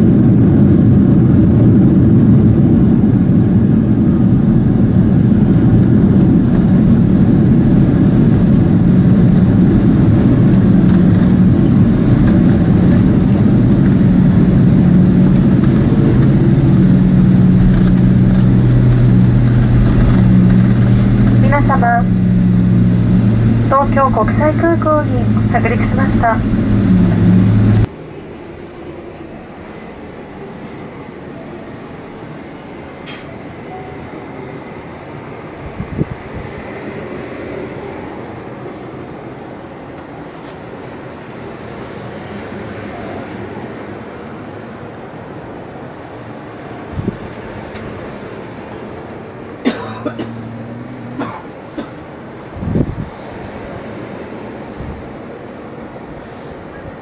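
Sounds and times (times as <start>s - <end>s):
airliner cabin engine noise: 0.0s - 57.0s.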